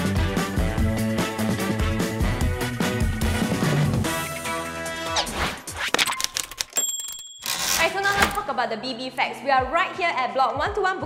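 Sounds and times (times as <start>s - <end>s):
woman speaking: 7.8s - 11.0s.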